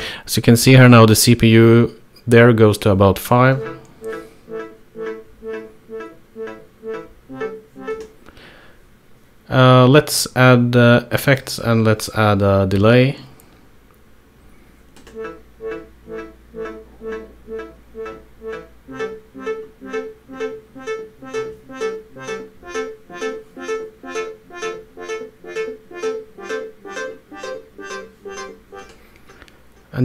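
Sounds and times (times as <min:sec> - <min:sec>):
synth playing short sawtooth notes: 0:03.4 - 0:08.2, 0:15.1 - 0:28.9.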